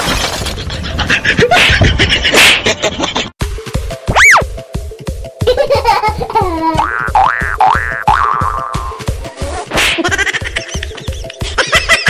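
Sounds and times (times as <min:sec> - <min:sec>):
background music with beat: 0:03.4 - 0:12.0
cartoon boing sound effect: 0:06.8 - 0:09.0.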